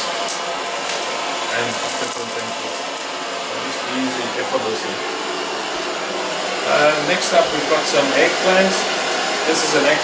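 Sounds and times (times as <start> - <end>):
butane torch hissing: 0.0 - 10.0.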